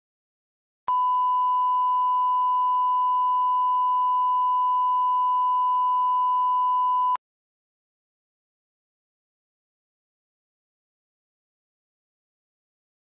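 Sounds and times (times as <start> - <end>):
sine wave test tone: 0.9 - 7.2.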